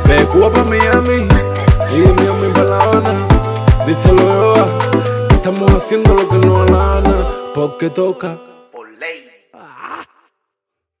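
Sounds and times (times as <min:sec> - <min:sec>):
man singing wordless ad-libs: 0:00.0 - 0:09.9.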